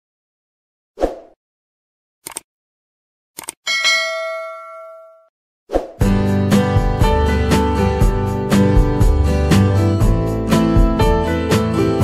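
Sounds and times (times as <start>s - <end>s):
bell chime: 3.7s - 5.3s.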